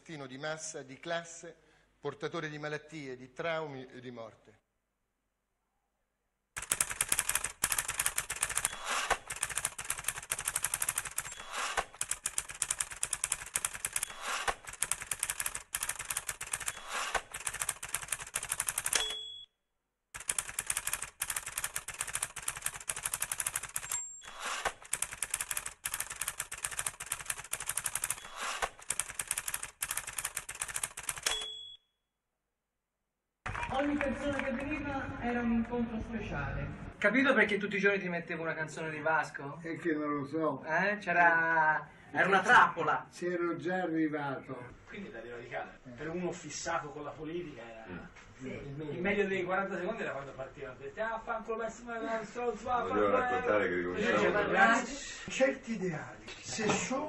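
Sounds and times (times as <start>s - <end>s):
typewriter keys clattering: 6.6s - 19.1s, 20.2s - 24.0s, 24.6s - 31.5s
typewriter carriage bell ding: 18.9s - 19.5s, 31.2s - 31.8s.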